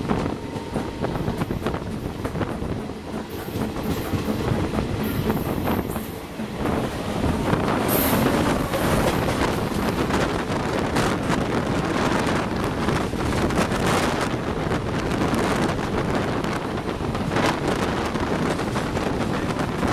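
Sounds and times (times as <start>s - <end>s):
passing train: 0.0s - 19.9s
train wheels clicking over rails: 0.0s - 19.9s.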